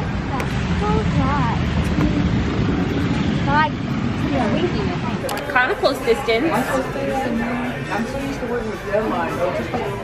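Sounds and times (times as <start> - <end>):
low outdoor rumble: 0.0 - 7.8.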